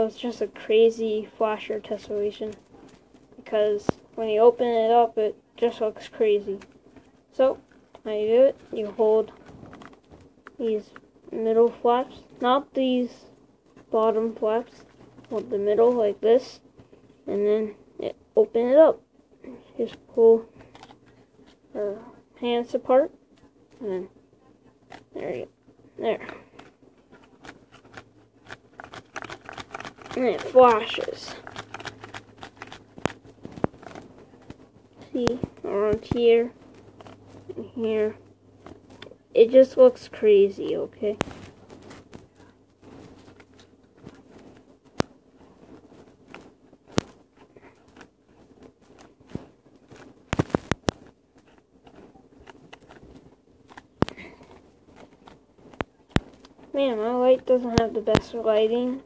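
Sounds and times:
folded paper crackling and rustling: 0:06.5 - 0:10.4, 0:26.4 - 0:37.4, 0:41.1 - 0:56.6
small crinkly clicks: 0:20.6 - 0:21.6, 0:26.2 - 0:37.4, 0:41.1 - 0:56.8.

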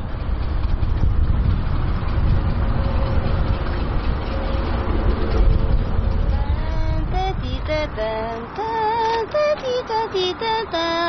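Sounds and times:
loud low rumble: 0:00.0 - 0:08.6.

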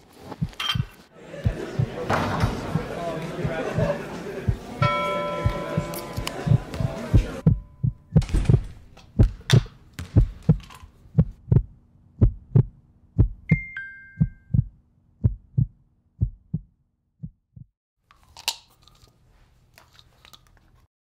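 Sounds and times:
heartbeat double thump: 0:00.4 - 0:03.9, 0:06.5 - 0:10.6, 0:11.2 - 0:13.5, 0:14.5 - 0:17.7
two-note phone message chime: 0:13.5 - 0:14.5.

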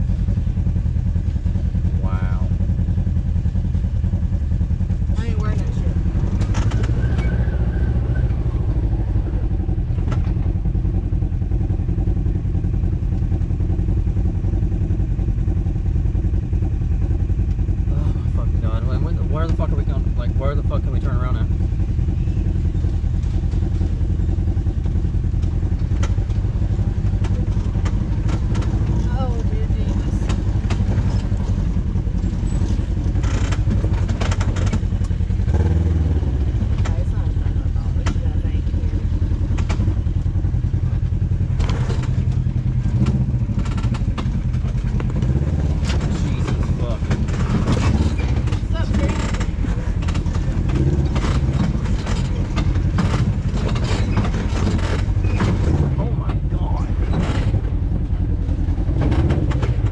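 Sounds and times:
vehicle engine running at low speed: 0:00.0 - 0:59.9
tyres knocking and clattering over rocks: 0:23.3 - 0:35.5, 0:41.2 - 0:57.8.

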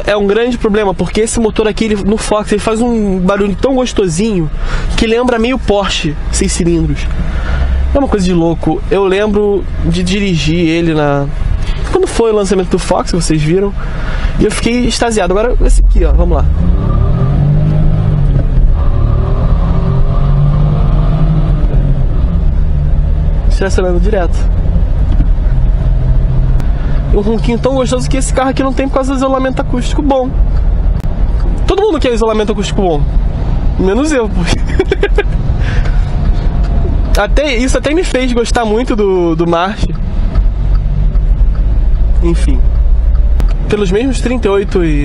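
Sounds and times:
car engine accelerating: 0:00.0 - 0:45.0.

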